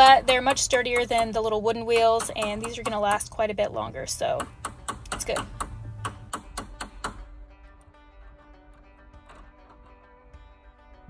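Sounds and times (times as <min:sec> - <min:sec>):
hammer tapping metal stem: 0:00.0 - 0:03.3, 0:04.2 - 0:07.3
soft background music: 0:00.0 - 0:11.0.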